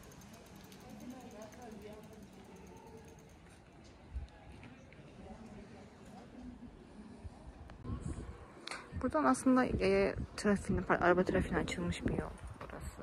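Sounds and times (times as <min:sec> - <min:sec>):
bicycle freewheel ticking: 0:00.0 - 0:03.6
faint voices: 0:00.0 - 0:09.3.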